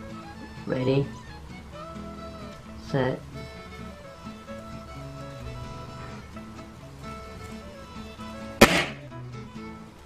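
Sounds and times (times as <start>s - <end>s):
background music: 0.0s - 10.0s
air rifle shot: 8.6s - 9.1s.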